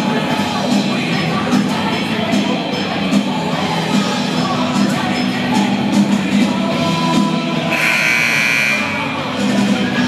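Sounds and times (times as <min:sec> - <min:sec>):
music playing: 0:00.0 - 0:10.0
scoreboard buzzer: 0:07.7 - 0:09.2.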